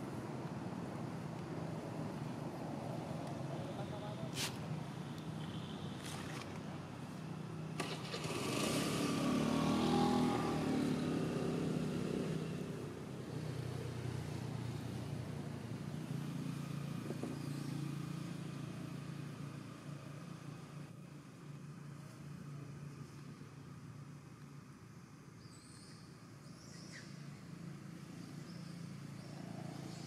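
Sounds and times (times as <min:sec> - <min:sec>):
vehicle engine passing: 0:07.8 - 0:15.0.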